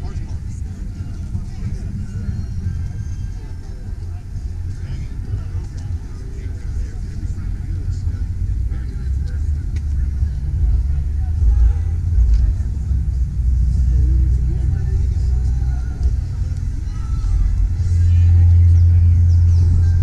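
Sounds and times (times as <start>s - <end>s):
heavy low rumble: 0.0s - 20.0s
people talking: 0.0s - 20.0s.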